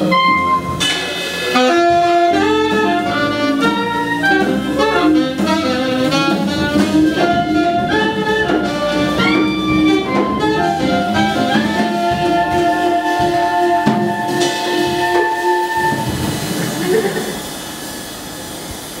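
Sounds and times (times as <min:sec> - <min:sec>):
jazz band playing: 0:00.0 - 0:17.9.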